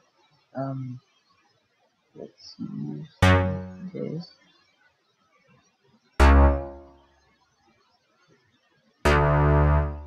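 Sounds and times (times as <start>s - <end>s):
synth bass note: 3.2s - 4.1s, 6.2s - 7.0s, 9.1s - 10.0s.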